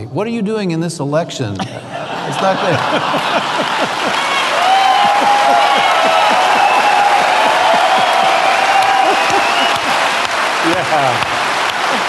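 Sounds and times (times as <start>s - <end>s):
audience applauding: 2.3s - 12.0s.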